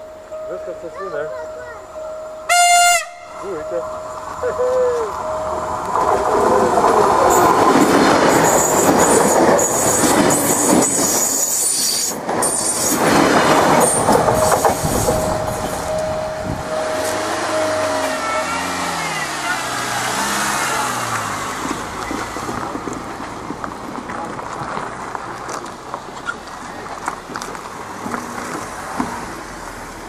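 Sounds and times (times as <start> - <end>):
train rolling past: 0.0 - 30.0
wheels clacking over rail joints: 0.0 - 30.0
wheels squealing on rails: 1.1 - 30.0.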